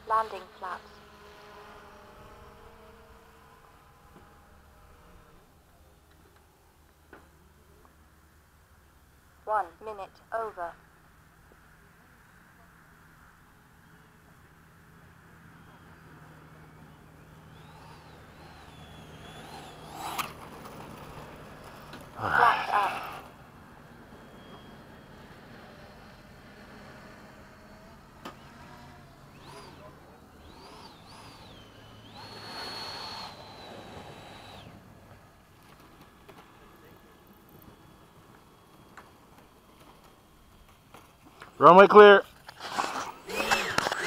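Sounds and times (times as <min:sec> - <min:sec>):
faint electric ducted fan whine: 0:00.0 - 0:44.0.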